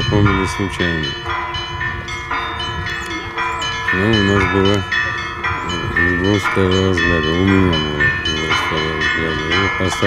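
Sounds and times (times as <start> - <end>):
church bells ringing: 0.0 - 10.0.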